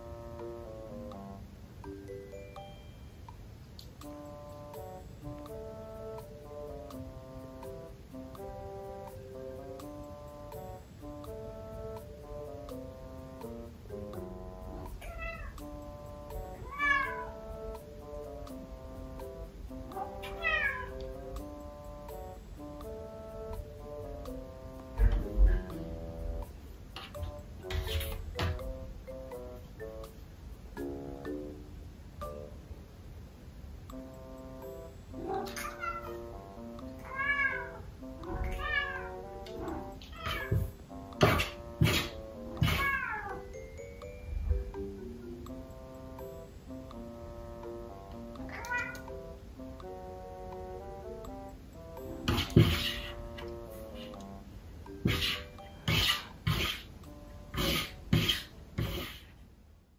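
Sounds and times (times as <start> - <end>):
light music with plucked notes: 0.0 - 32.7, 33.8 - 59.0
kitten meowing: 15.0 - 15.6, 16.6 - 17.3, 20.0 - 21.0, 35.3 - 36.2, 37.0 - 39.2, 40.0 - 40.6, 42.6 - 43.4, 48.5 - 49.1.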